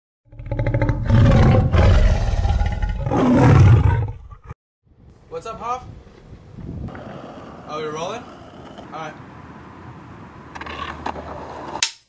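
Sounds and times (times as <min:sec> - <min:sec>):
lion growling and roaring: 0:00.3 - 0:04.6.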